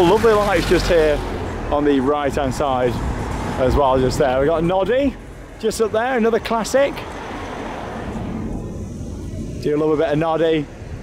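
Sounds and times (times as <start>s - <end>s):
road vehicle passing: 0.0s - 11.0s.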